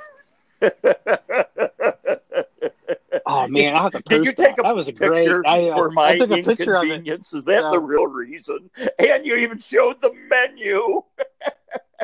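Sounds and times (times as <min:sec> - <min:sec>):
man laughing: 0:00.6 - 0:04.5, 0:05.2 - 0:07.1, 0:08.8 - 0:12.0.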